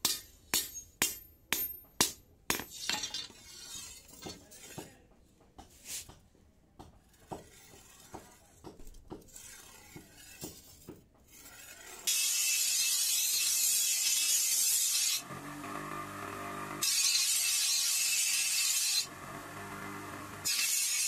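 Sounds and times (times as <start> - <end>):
bench grinder grinding steel: 11.3 - 21.0.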